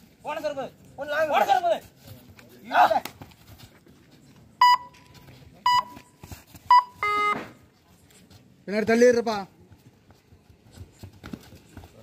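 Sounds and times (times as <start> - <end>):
electronic beeper beeping: 4.6 - 5.0, 6.7 - 7.5.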